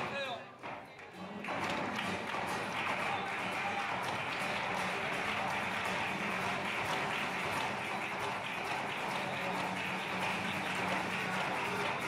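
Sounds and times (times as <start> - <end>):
flamenco guitar: 0.0 - 12.0
rapid hand clapping: 0.0 - 12.0.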